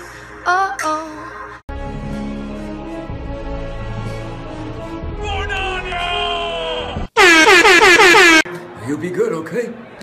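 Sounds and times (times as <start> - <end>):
man yelling loudly: 5.2 - 7.1.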